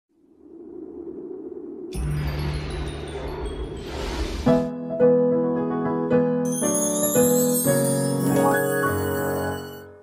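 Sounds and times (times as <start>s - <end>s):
steady low tone: 0.1s - 4.8s
intro music: 2.0s - 5.3s.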